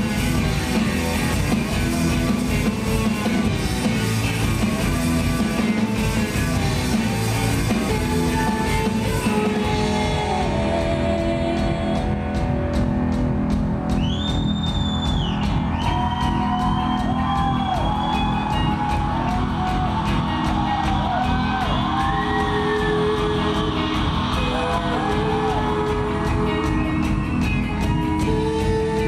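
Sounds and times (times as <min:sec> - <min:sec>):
live rock band playing: 0:00.0 - 0:29.0
lead vocal singing: 0:07.7 - 0:12.2, 0:21.6 - 0:27.1.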